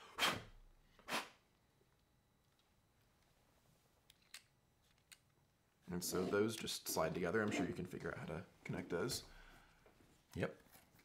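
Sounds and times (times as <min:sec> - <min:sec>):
plastic parts clicking: 0:04.1 - 0:05.4.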